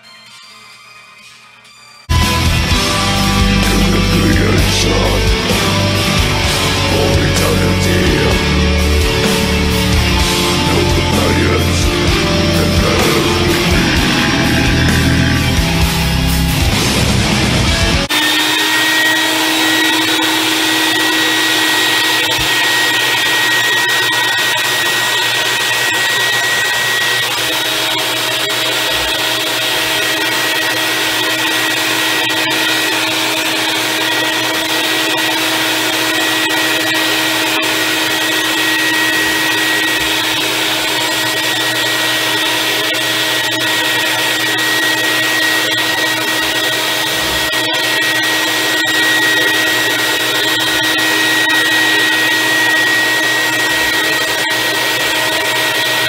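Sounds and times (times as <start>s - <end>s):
vacuum cleaner running: 2.1s - 56.0s.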